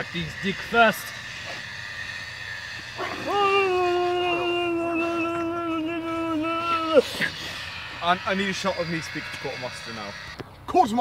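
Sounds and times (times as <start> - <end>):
person wailing: 3.2 - 7.6.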